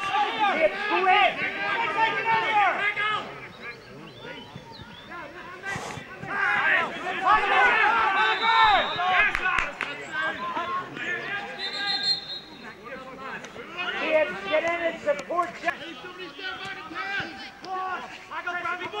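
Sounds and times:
men shouting and talking: 0:00.0 - 0:19.0.

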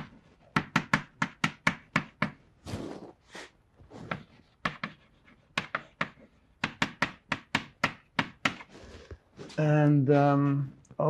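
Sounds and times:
chalk scratching on blackboard: 0:02.7 - 0:06.4
chalk clicking on blackboard: 0:04.1 - 0:08.7.

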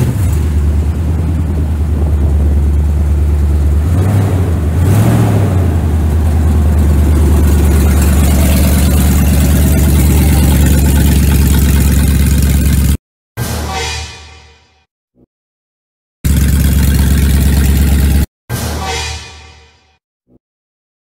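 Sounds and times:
engine revving: 0:00.0 - 0:13.0, 0:16.3 - 0:18.3
truck engine idling loudly: 0:00.0 - 0:13.0, 0:16.3 - 0:18.3.

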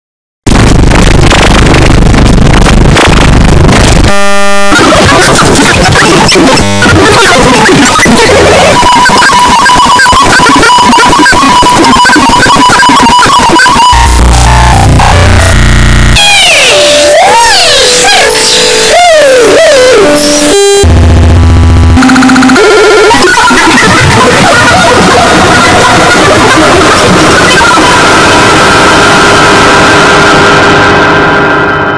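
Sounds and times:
harsh chaotic noise: 0:00.4 - 0:31.9
loud steady buzzing tone: 0:00.5 - 0:07.6, 0:08.3 - 0:31.9.

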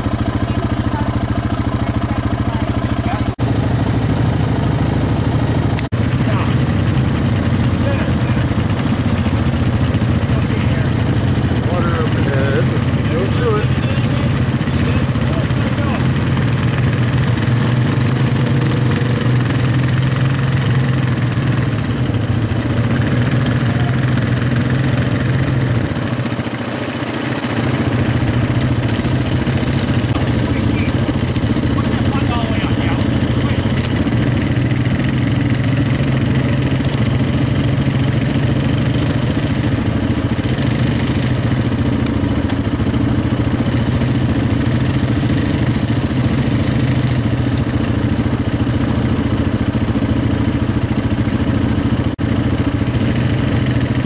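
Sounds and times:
off-road vehicle engines humming: 0:00.0 - 0:54.0.

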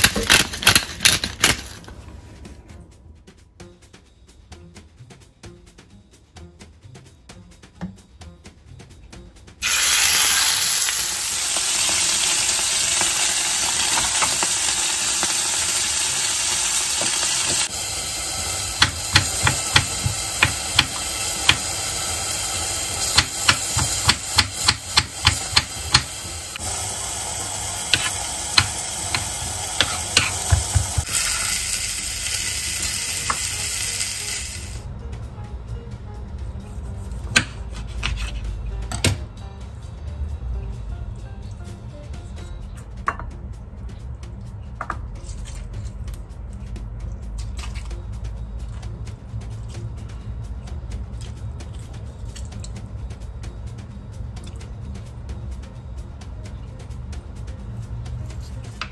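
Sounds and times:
steak sizzling in frying pan: 0:09.6 - 0:34.8
knife chopping on cutting board: 0:18.8 - 0:21.6, 0:29.8 - 0:31.1, 0:37.3 - 0:38.4.

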